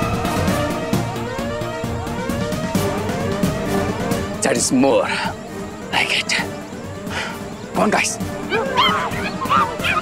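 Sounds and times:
background score music: 0.0 - 10.0
high yelping cries: 8.4 - 10.0.

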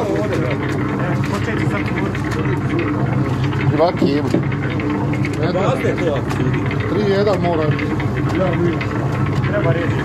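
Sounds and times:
meat mixer running: 0.0 - 10.0
people talking: 5.3 - 8.9, 9.5 - 10.0.

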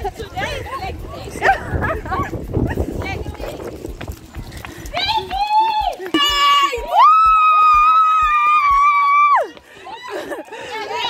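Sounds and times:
low microphone rumble: 0.0 - 5.1
young women chattering: 0.0 - 7.0, 9.8 - 11.0.

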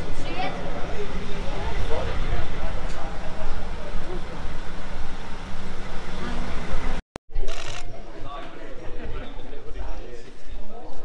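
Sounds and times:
diesel engine idling: 0.0 - 7.0
indistinct chatter: 0.0 - 11.0.

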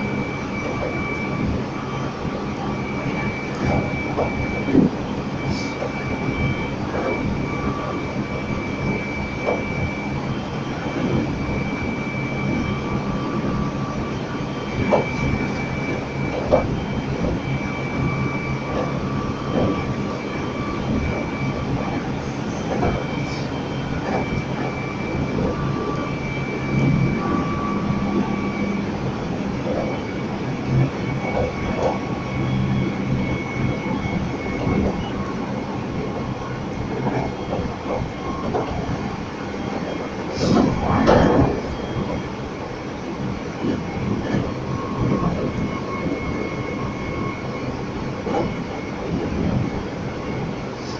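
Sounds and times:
electric train whine: 0.0 - 50.9
train running noise: 0.0 - 50.9.

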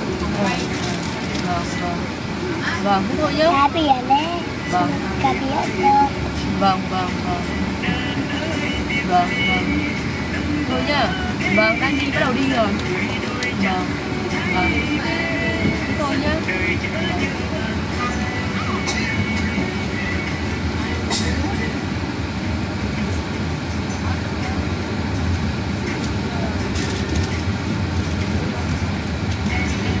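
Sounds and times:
faint voices: 0.0 - 30.0
train rumbling: 0.0 - 30.0.

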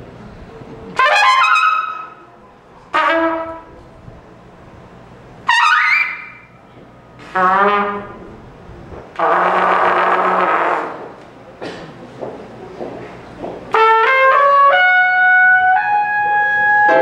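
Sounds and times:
trumpet free jazz improvisation: 1.0 - 2.3, 2.9 - 3.8, 5.4 - 6.6, 7.2 - 8.5, 9.1 - 11.2, 13.7 - 17.0.

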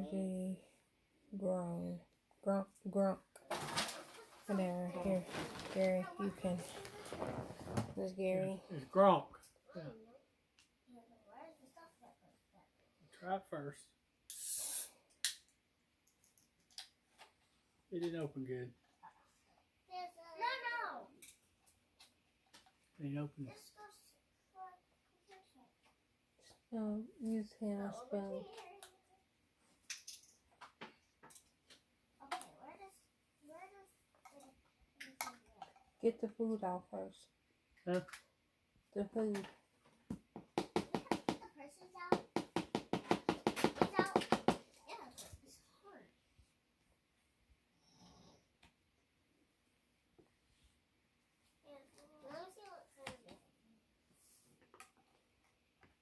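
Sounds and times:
child's voice: 0.0 - 0.7, 1.3 - 7.2, 10.9 - 12.3, 19.9 - 21.2, 23.5 - 25.7, 26.8 - 29.2, 32.2 - 35.6, 41.4 - 42.2, 43.8 - 46.1, 51.6 - 53.4
rapid sharp knocks: 40.4 - 41.4, 42.1 - 44.6.

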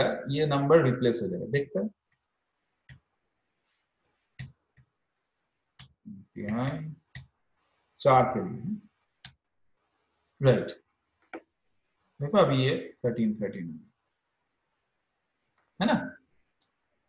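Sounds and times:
man talking: 0.0 - 1.9, 6.1 - 7.0, 8.0 - 8.8, 10.4 - 10.7, 12.2 - 13.8, 15.8 - 16.2.

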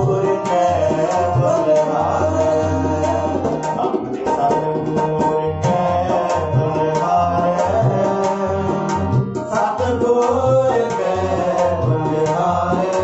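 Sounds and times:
harmonium sustained notes: 0.0 - 13.0
tabla drumming: 0.0 - 13.0.

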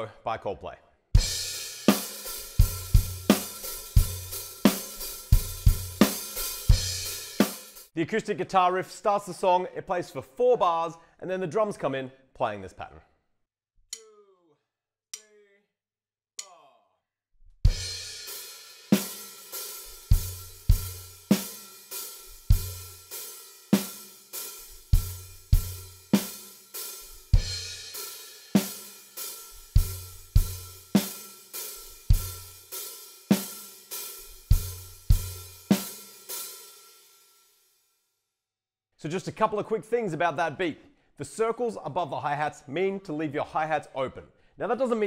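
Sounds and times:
drum kit playing beat: 1.2 - 7.9, 17.7 - 36.8
open hi-hats: 1.2 - 7.9, 17.7 - 37.3.

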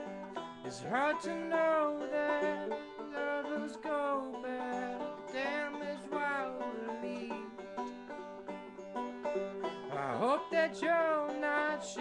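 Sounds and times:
banjo picking: 0.0 - 12.0
person singing wordless notes: 0.7 - 7.5, 9.8 - 12.0.

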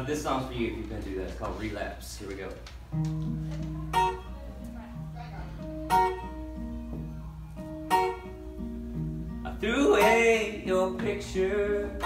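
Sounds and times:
guitars strumming chords: 2.9 - 12.0
man singing: 9.4 - 12.0.

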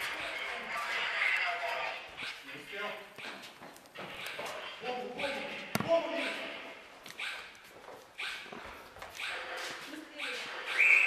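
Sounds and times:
people talking and calling out: 0.0 - 7.5.

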